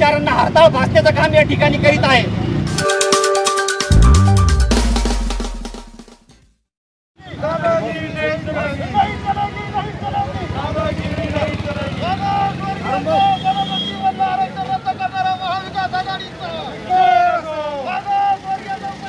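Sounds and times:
low rumble of road traffic: 0:07.2 - 0:19.0
men calling out: 0:07.3 - 0:19.0.

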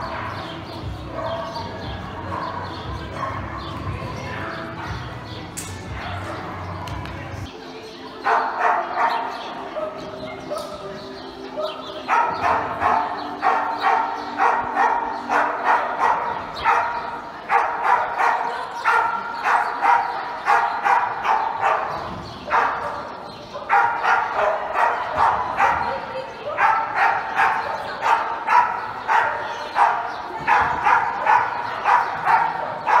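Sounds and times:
dog barking excitedly: 0:11.6 - 0:33.0.

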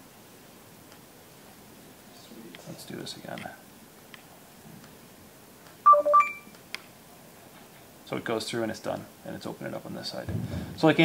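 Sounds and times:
short electronic beeps: 0:05.9 - 0:06.5.

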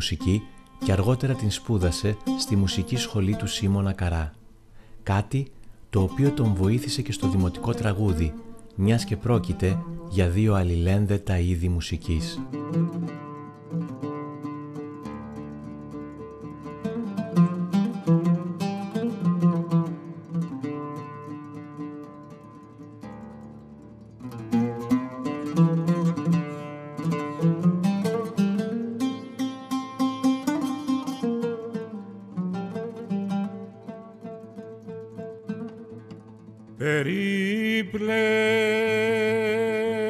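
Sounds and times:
oud playing plucked notes: 0:00.0 - 0:40.0.

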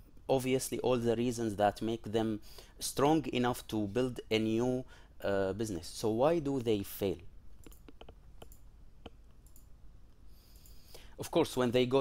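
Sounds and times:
soft hiss: 0:00.0 - 0:12.0
faint sharp clicks: 0:07.6 - 0:09.7.

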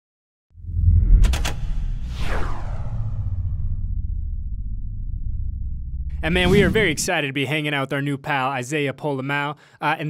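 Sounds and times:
steady low rumble: 0:00.6 - 0:07.1
whoosh sweep falling in pitch: 0:00.6 - 0:07.1.

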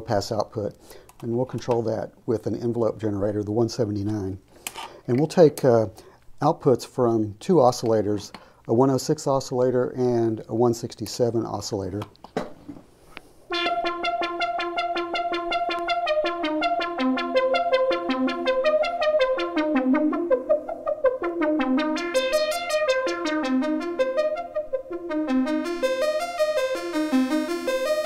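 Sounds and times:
buzzy synthesizer notes: 0:13.5 - 0:28.0.

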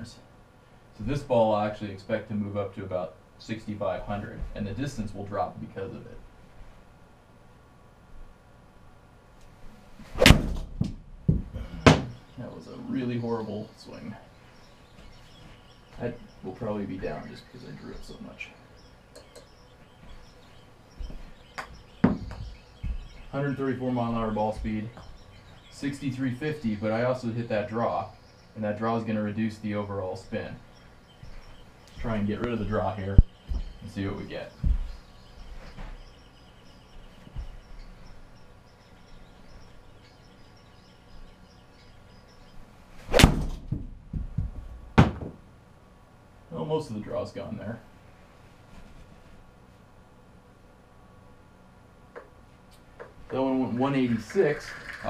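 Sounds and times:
golf club striking ball: 0:10.2 - 0:11.1, 0:43.1 - 0:43.7
soft knocks: 0:21.0 - 0:23.3, 0:43.4 - 0:45.4.

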